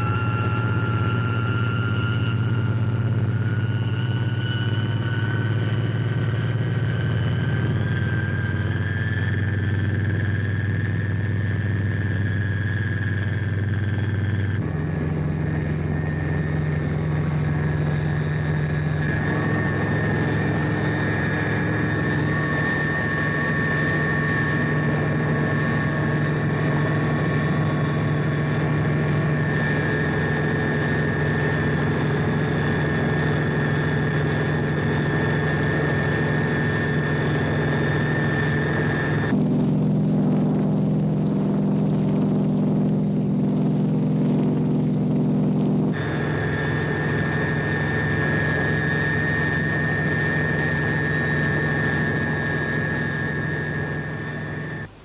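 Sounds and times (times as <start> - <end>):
constant high whine: 0.0 - 55.0
helicopter engine and rotors drone: 0.0 - 55.0.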